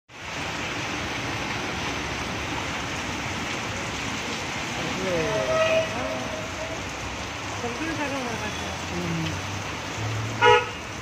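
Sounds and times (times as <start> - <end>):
heavy rain pouring: 0.1 - 11.0.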